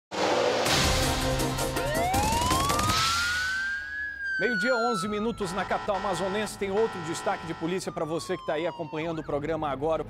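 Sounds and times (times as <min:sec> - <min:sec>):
theme music: 0:00.1 - 0:08.0
siren wail rising in pitch: 0:01.6 - 0:10.0.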